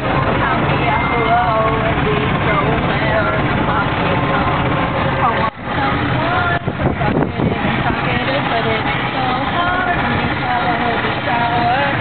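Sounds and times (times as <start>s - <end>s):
golf cart motor and wheels: 0.0s - 12.0s
people's voices: 0.0s - 12.0s.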